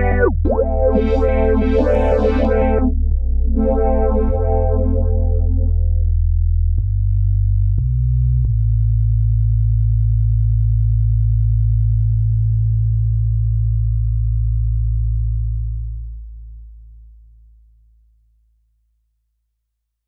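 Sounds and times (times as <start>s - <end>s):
deep synthesizer bass tones: 0.0s - 9.4s.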